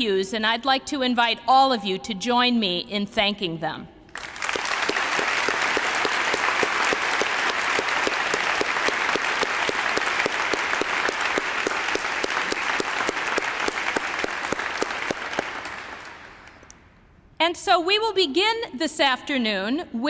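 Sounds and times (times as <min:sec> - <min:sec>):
audience applauding: 0:04.1 - 0:16.8.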